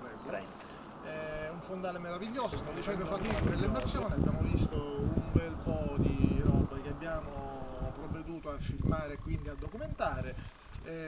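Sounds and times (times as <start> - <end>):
men talking indistinctly: 0.0 - 11.0
drawn-out hesitation sounds: 0.4 - 11.0.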